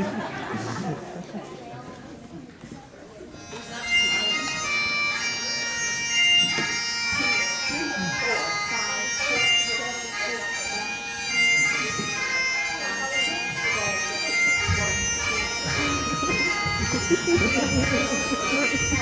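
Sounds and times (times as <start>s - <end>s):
bagpipe music: 3.2s - 19.0s.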